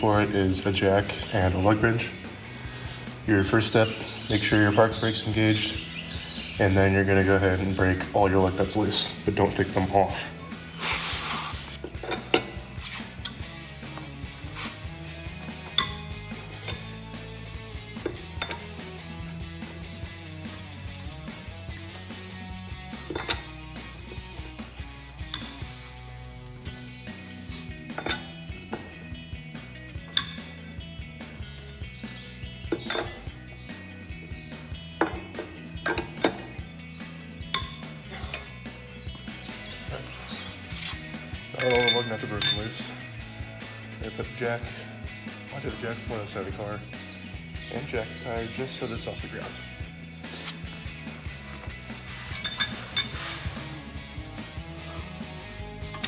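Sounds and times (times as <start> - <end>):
background music: 0.0 - 56.0
lug wrench clinking on nuts: 11.8 - 14.1, 15.6 - 17.1, 17.9 - 18.8, 23.0 - 23.7, 25.0 - 26.8, 27.8 - 29.0, 29.6 - 30.7, 31.4 - 33.4, 34.9 - 36.7, 37.4 - 38.6, 41.5 - 43.0, 52.3 - 53.4.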